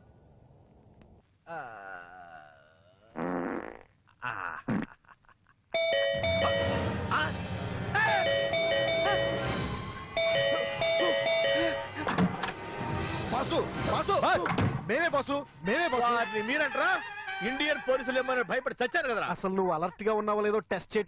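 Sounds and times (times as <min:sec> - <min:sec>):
electronic chime tune: 0:05.8 - 0:07.0, 0:08.1 - 0:11.9
musical backing: 0:05.8 - 0:18.4.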